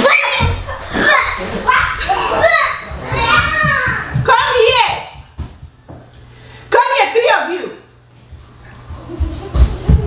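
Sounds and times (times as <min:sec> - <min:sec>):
children calling out: 0:00.0 - 0:04.8.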